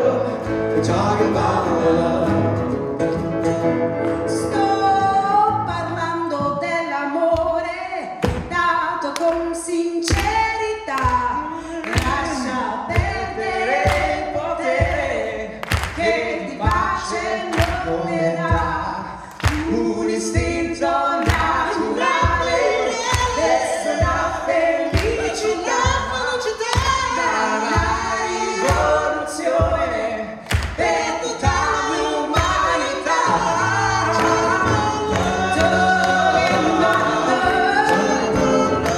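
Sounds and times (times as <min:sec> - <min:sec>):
voices singing in close harmony: 0:00.0 - 0:02.8, 0:11.2 - 0:38.9.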